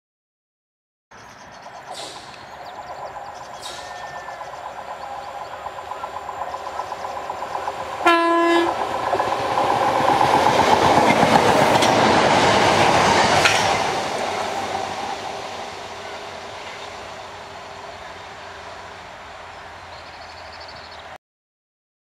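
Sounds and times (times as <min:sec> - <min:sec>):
electric train passing: 0:01.2 - 0:21.2
wheels clattering on track: 0:01.7 - 0:15.1
train horn: 0:08.0 - 0:08.8.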